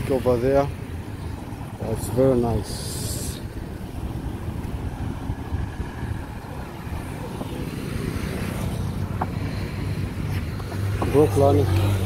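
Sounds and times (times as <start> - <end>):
road traffic rumble: 0.0 - 12.0
wind on microphone: 2.5 - 11.1.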